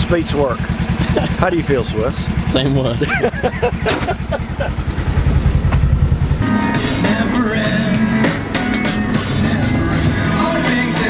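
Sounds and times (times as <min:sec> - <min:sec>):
utility vehicle engine running: 0:00.0 - 0:11.0
person laughing: 0:01.0 - 0:01.4, 0:02.9 - 0:04.9
music: 0:06.3 - 0:11.0.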